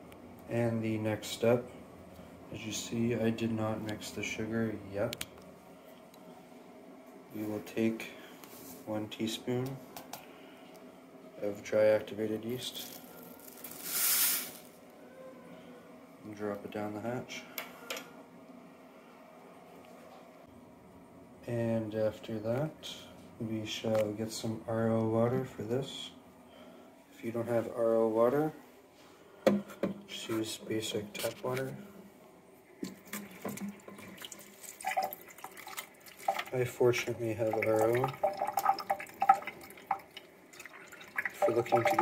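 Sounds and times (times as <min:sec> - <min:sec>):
granules sliding down funnel: 0:13.3 - 0:14.7
water stream into sink: 0:32.8 - 0:36.7, 0:37.4 - 0:42.0.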